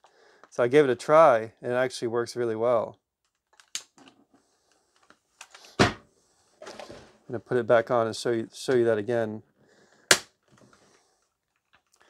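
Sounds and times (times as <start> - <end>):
plastic parts clicking: 3.2 - 4.2.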